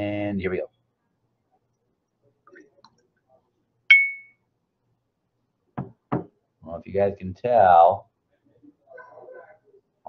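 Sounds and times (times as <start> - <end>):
glass clinking on beaker: 3.9 - 4.4.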